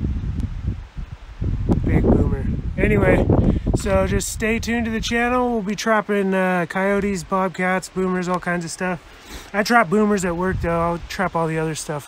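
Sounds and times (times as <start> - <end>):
wind buffeting microphone: 0.0 - 5.9, 9.6 - 11.8
man's voice: 1.8 - 12.0.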